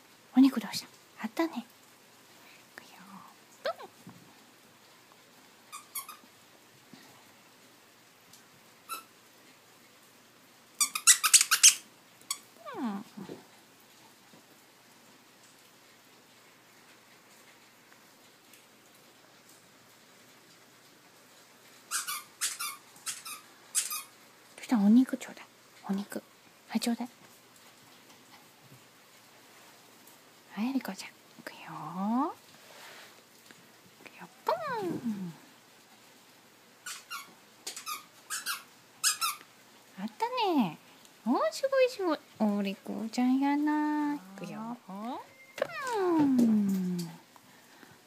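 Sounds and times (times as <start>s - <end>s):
squeaky dog toy squeaking: 5.7s - 6.2s, 10.8s - 12.4s, 21.9s - 24.1s, 36.9s - 39.4s.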